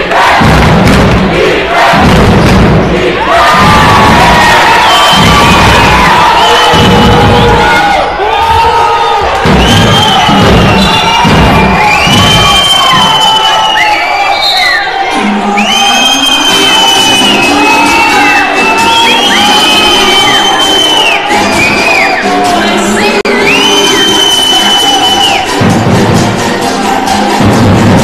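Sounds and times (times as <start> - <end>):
crowd cheering and shouting: 0.0 - 28.0
music playing in the hall: 0.0 - 28.0.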